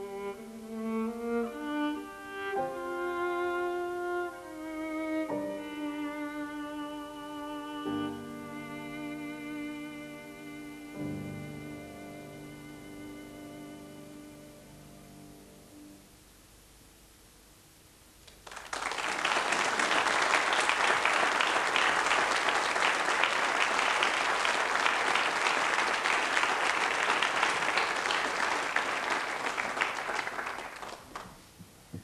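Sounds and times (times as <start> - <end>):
audience applause: 18.3 - 31.4.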